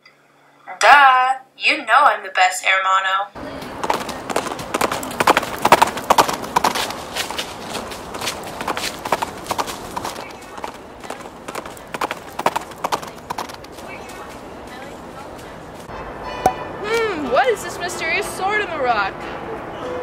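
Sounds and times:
horse hooves trotting: 0:03.4 - 0:15.9.

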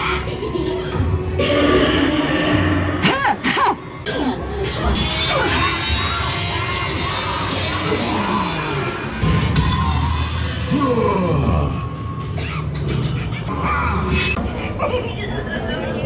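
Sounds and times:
eerie music: 0:00.0 - 0:14.4
gliding voice-like scare effects: 0:00.0 - 0:16.0.

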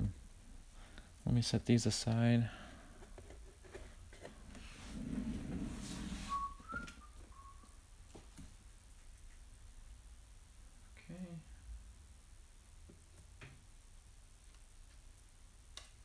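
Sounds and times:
person whistling short notes: 0:06.2 - 0:07.8.

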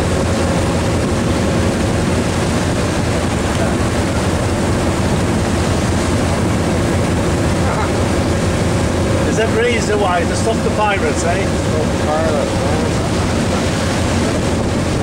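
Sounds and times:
boat engine running: 0:00.0 - 0:15.0.

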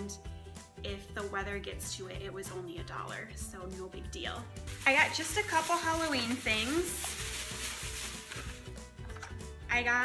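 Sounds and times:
soft background music: 0:00.0 - 0:10.0
rustling decoration being handled: 0:04.7 - 0:09.4.

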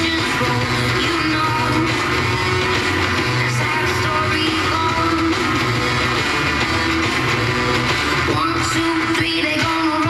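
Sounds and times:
pop-rock music over loudspeaker: 0:00.0 - 0:10.0.

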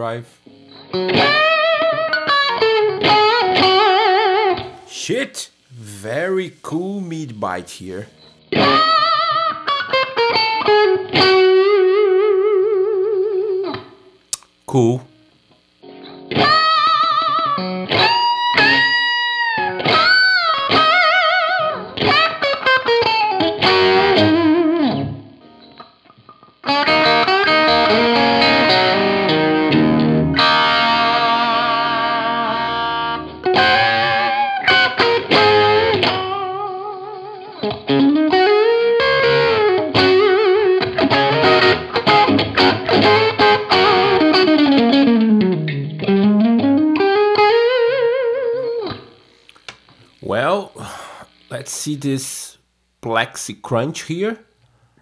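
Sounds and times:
overdriven electric guitar lead: 0:15.9 - 0:50.0.

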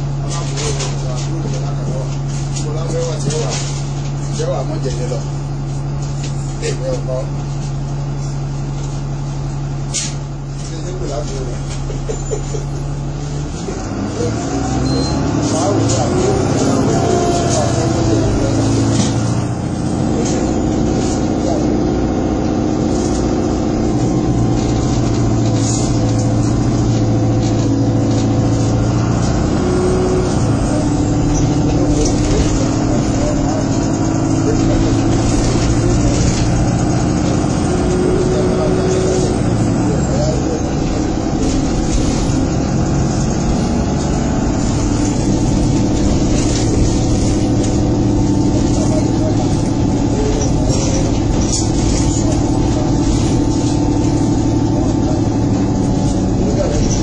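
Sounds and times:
bus engine hum: 0:00.0 - 0:57.0
road noise: 0:00.0 - 0:57.0.

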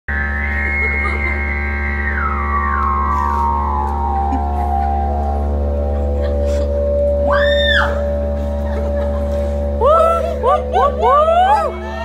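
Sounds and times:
low drone: 0:00.1 - 0:12.0
sustained electric guitar chord: 0:00.1 - 0:12.0.

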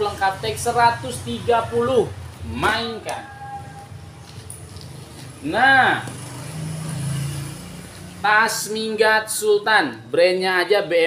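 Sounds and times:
vehicle engine passing: 0:00.0 - 0:09.2.

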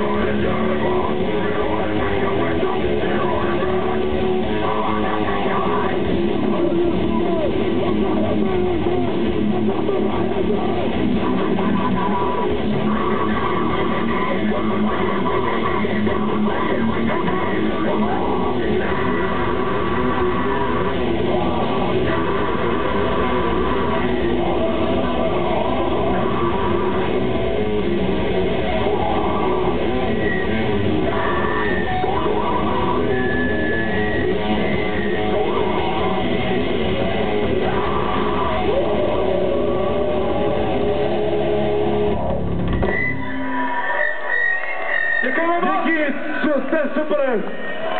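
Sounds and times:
bass guitar: 0:00.0 - 0:47.9
drums: 0:00.0 - 0:47.9
electric guitar: 0:00.0 - 0:47.9
grindcore band playing loudly: 0:00.0 - 0:47.9.

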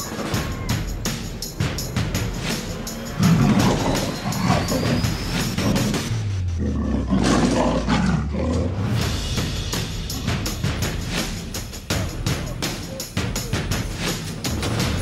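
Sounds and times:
background music: 0:00.0 - 0:15.0
big cat roaring: 0:03.2 - 0:08.9.

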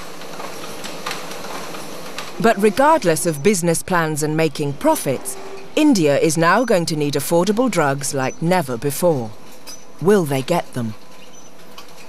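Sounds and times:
packing machine clattering: 0:00.0 - 0:03.4.

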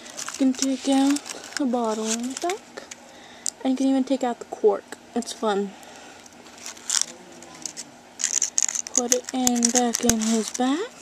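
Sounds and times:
paper rustling and rubbing: 0:00.0 - 0:02.6, 0:06.4 - 0:11.0.

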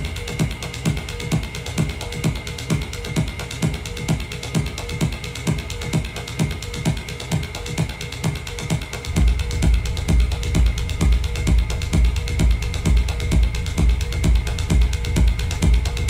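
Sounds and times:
clicking hi-hat ticks: 0:00.0 - 0:16.0
kick drum: 0:00.0 - 0:16.0
techno music: 0:00.0 - 0:16.0.

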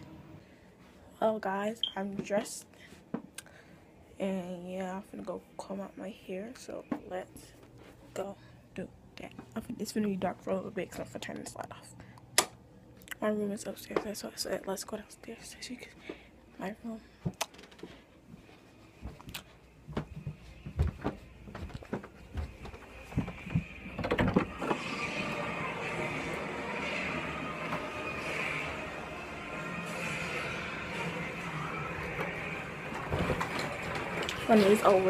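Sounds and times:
steady background noise: 0:00.0 - 0:35.0
footsteps on stairs: 0:19.0 - 0:24.7.

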